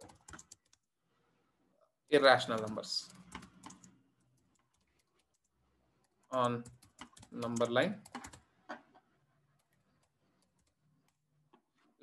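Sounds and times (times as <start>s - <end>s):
computer keyboard typing: 0.0s - 0.9s, 2.4s - 8.5s, 9.6s - 11.2s.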